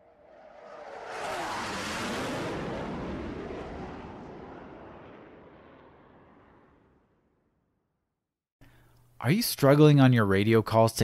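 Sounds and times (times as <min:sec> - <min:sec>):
aircraft flying by: 0:00.0 - 0:07.3.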